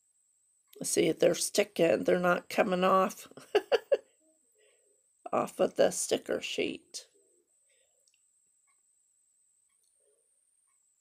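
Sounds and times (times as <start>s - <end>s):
faint high whine: 0.0s - 11.0s.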